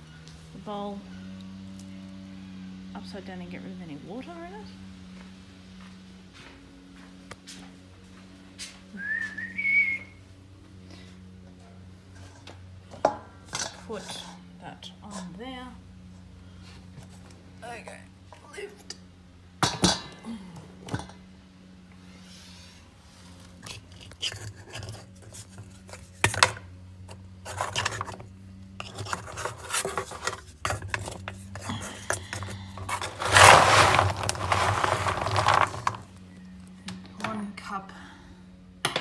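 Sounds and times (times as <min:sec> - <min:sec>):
dog bowl knocking and scraping: 0:12.2 - 0:14.4, 0:27.4 - 0:36.1.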